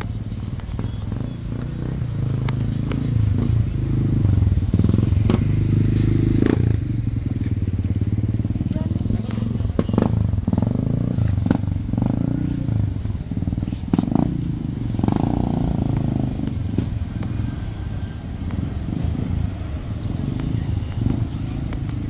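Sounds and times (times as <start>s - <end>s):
motorcycle engine running: 0.0s - 22.0s
people's voices: 0.0s - 22.0s.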